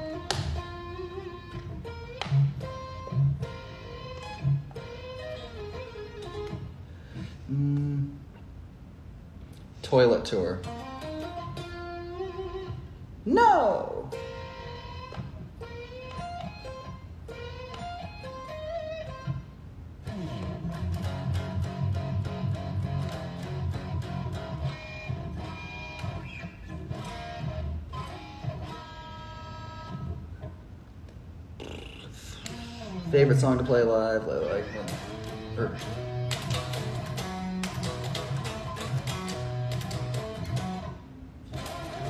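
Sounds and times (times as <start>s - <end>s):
electric guitar playing: 0.0s - 8.3s, 10.4s - 31.0s, 32.2s - 42.0s.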